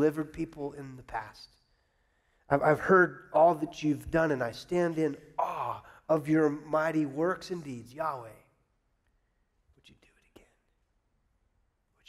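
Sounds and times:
man whispering: 9.7 - 11.0.

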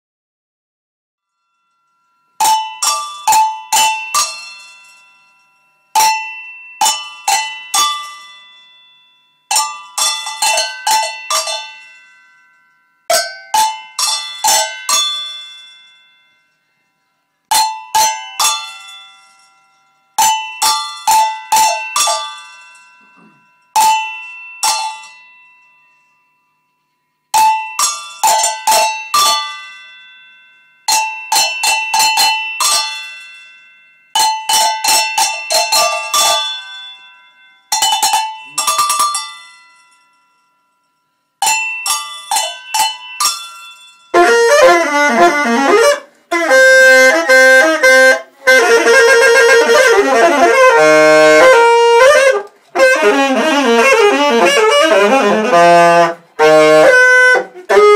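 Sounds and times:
cowbells struck by hand: 1.3 - 57.9.

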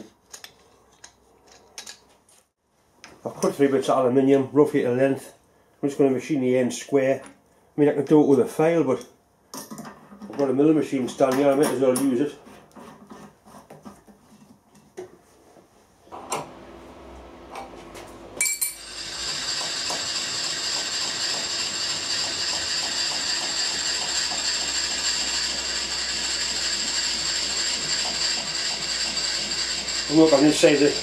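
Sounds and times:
milling machine spindle whine: 16.2 - 31.0.

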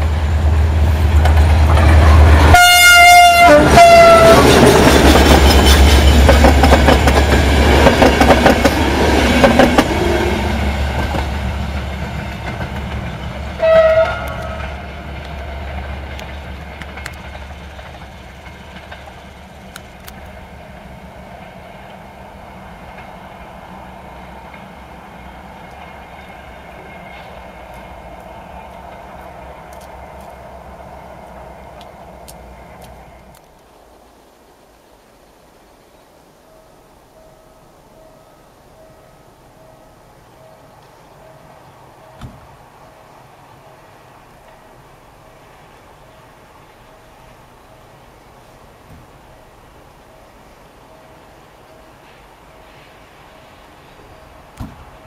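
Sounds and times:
train horn blast: 1.9 - 4.8, 13.6 - 15.1
train wheels clattering over rail joints: 4.1 - 10.1, 10.9 - 20.4.

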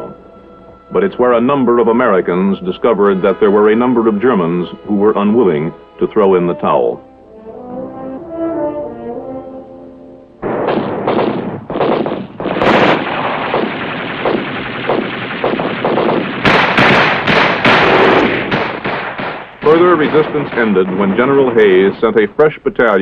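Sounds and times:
brass-led orchestral music: 0.0 - 10.4
machine-gun and small-arms fire: 10.4 - 22.2.

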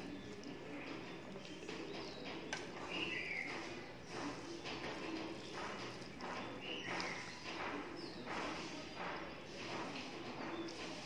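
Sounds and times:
close-up chewing with mouth smacks: 0.0 - 8.6.

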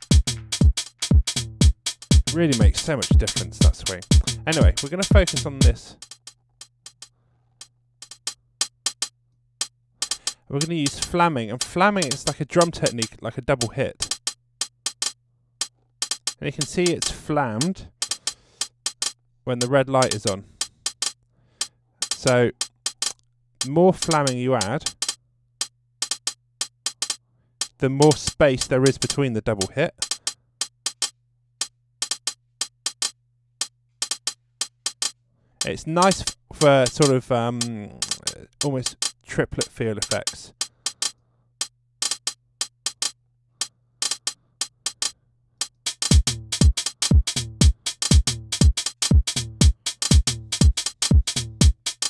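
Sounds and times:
hi-hat ticks: 0.0 - 52.0.

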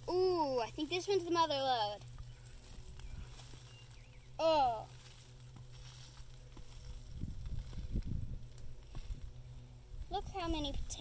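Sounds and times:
plant rustling: 1.4 - 9.4
dull low thumps: 6.4 - 10.1.

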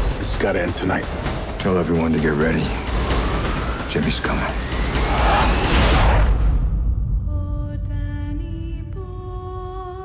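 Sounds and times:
loud noisy whoosh: 2.8 - 6.8.

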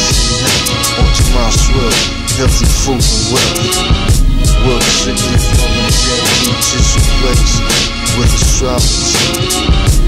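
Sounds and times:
rapping over a bass-heavy beat: 0.0 - 10.0.

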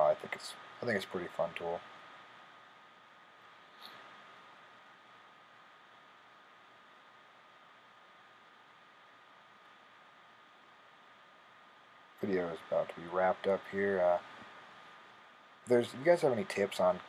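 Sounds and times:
faint room hiss: 0.0 - 17.0
thin steady hum: 0.0 - 17.0
faint click: 3.8 - 4.1.

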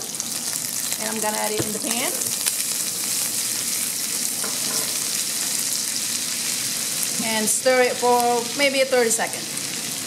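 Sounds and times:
garlic and onion sizzling in oil: 0.0 - 10.0.

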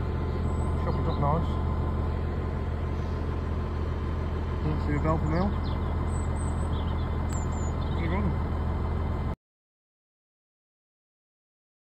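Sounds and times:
tractor engine idling: 0.0 - 9.4
bird chirps: 0.3 - 1.5, 5.1 - 8.3.

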